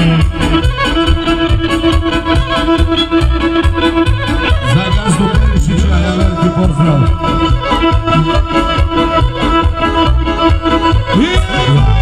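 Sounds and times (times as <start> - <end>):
accordion dance music: 0.0 - 12.0
fast steady beat: 0.0 - 12.0.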